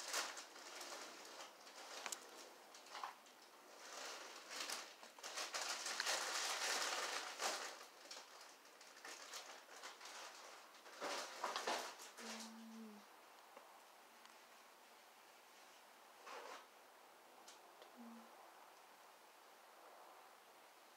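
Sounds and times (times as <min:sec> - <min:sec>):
soft rustling: 0:00.0 - 0:16.7.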